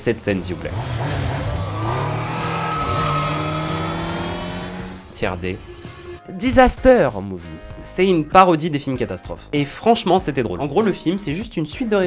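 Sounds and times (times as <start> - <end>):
motorcycle engine revving: 0.4 - 6.2.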